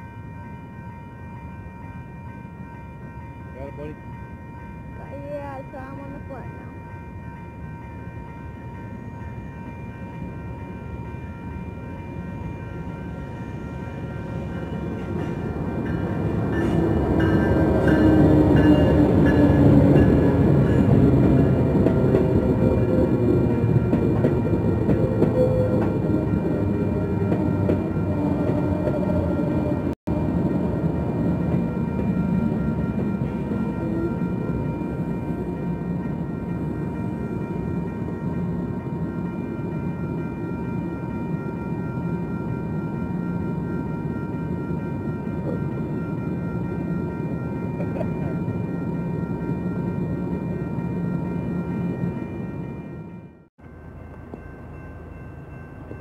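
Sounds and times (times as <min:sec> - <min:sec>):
crossing warning bell ringing: 0:00.0 - 0:56.0
diesel locomotive engine passing: 0:00.0 - 0:56.0
train wheels rumbling on rails: 0:13.4 - 0:41.6.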